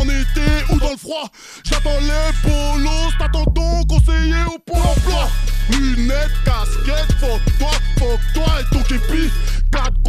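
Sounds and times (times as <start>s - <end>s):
hip hop beat with deep bass: 0.0s - 10.0s
man rapping: 0.0s - 10.0s.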